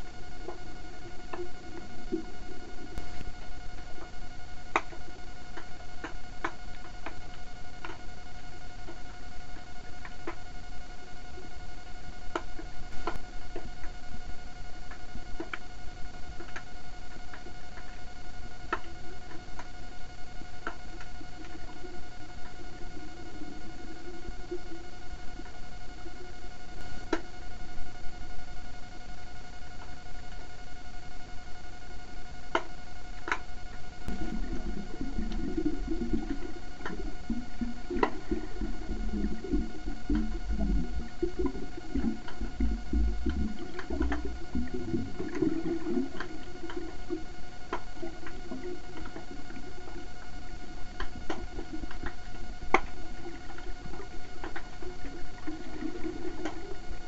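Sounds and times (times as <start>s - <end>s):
high electronic whine: 0.0s - 57.0s
low rumbling of water: 33.4s - 57.0s.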